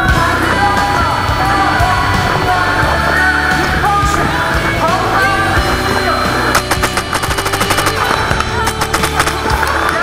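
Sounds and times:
paintball marker firing fast burst: 0:06.6 - 0:10.0.

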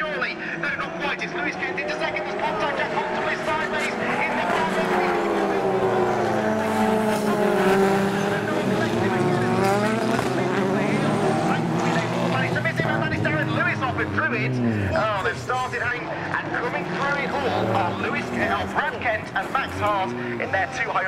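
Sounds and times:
race car engines passing: 0:00.0 - 0:21.0.

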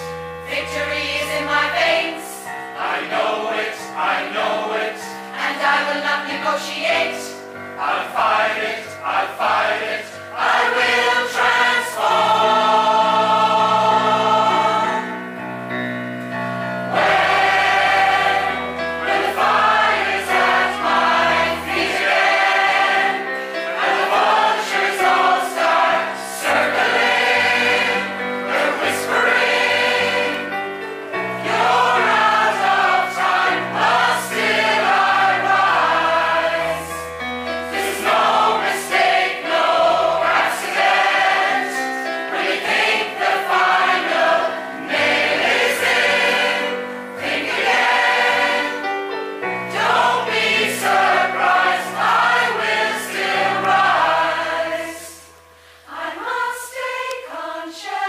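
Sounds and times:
mixed choir singing: 0:00.0 - 0:58.0.

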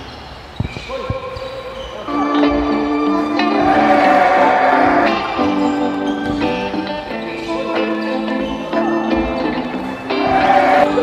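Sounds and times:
basketball bouncing on hardwood: 0:06.2 - 0:06.6.

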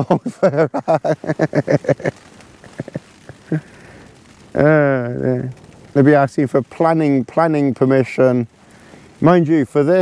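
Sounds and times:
light rain pattering on tarp: 0:00.0 - 0:10.0
sharp drop ticks: 0:05.2 - 0:07.2.

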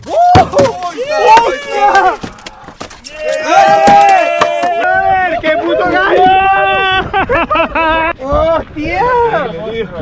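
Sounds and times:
men shouting excitedly: 0:00.1 - 0:07.2.

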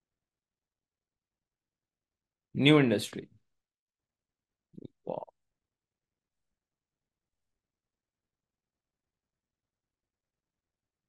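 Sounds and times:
man murmuring: 0:04.8 - 0:05.3.

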